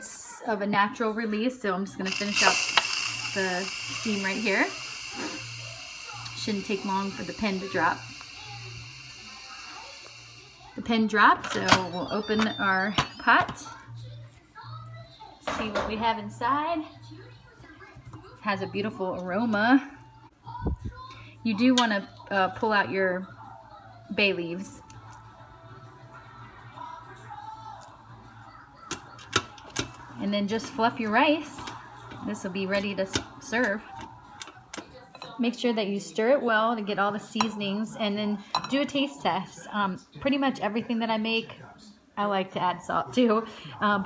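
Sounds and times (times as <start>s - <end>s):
steam hissing from pressure valve: 2.0s - 10.9s.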